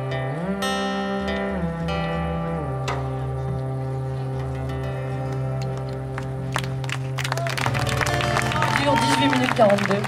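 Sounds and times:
live band sustained chord: 0.0 - 10.0
audience clapping: 5.6 - 10.0.

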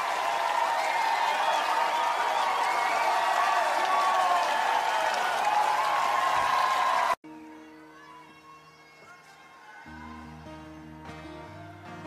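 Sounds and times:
crowd cheering and applauding: 0.0 - 12.0.

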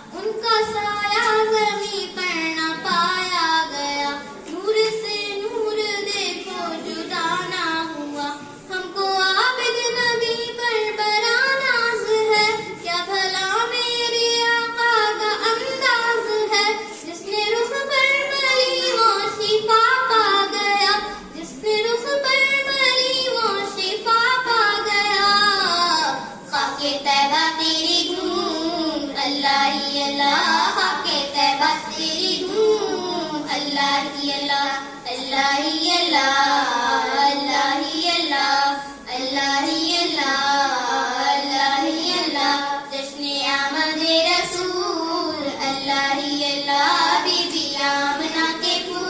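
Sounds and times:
girl singing devotional song: 0.0 - 49.0.

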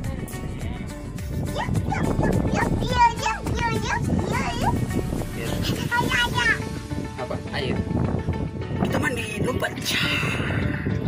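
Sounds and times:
background music: 0.0 - 11.0
child talking: 1.5 - 6.8.

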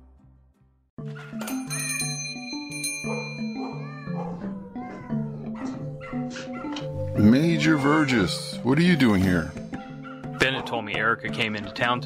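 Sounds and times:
soft background music: 1.0 - 12.0
bright bell-like tones: 1.4 - 4.2.

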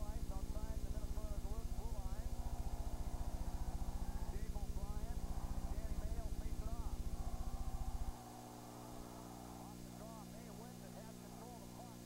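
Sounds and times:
rapid pulsing buzz: 0.0 - 12.0
steady electrical hum: 0.0 - 12.0.

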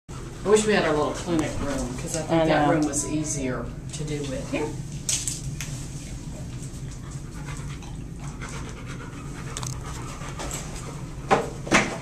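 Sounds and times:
large dog panting: 6.9 - 11.1.

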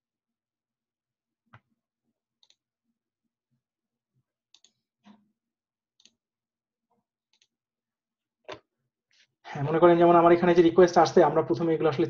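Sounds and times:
computer mouse clicks: 4.6 - 5.2.

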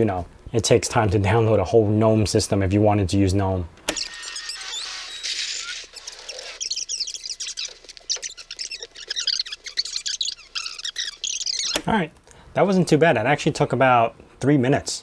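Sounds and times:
fast-forward sound effect chirping: 3.9 - 11.8.

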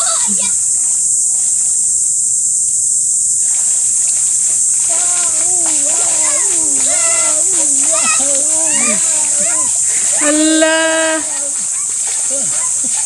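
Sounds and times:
steady high hiss: 0.0 - 13.0
water splashing: 0.0 - 13.0.

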